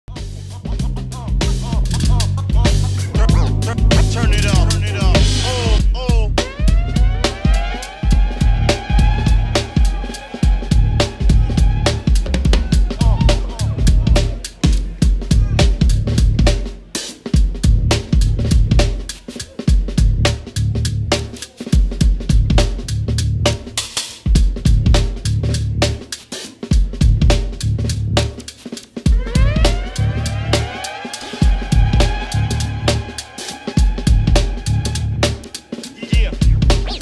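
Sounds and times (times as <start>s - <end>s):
drum kit groove: 0.0s - 37.0s
sliding pitched tone: 2.9s - 12.6s, 29.1s - 37.0s
low sustained bass: 29.4s - 30.6s, 31.8s - 33.0s, 34.1s - 35.4s.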